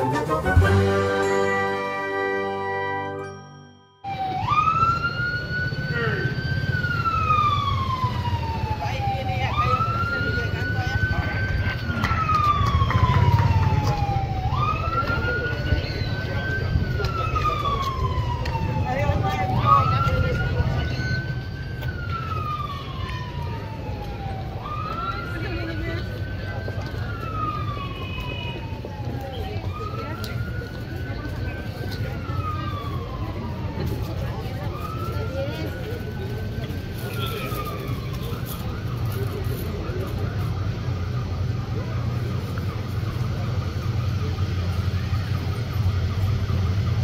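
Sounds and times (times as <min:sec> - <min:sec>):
siren wailing: 0:04.0 - 0:47.0.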